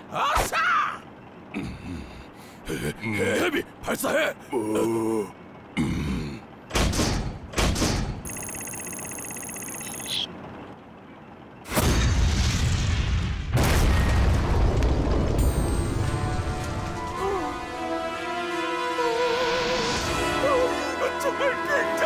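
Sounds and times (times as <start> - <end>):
high electronic whine: 8.2 - 10.8
loud blast and rumble: 11.7 - 16.9.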